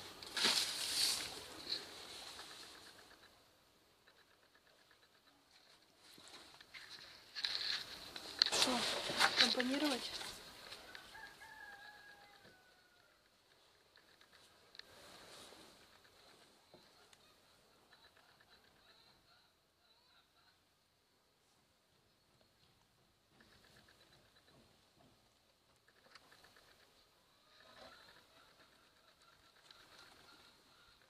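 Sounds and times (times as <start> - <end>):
rapid faint ticks: 1.4 - 8.6, 9.3 - 18.9, 22.7 - 31.0
faint distant rooster crowing: 10.6 - 13.4.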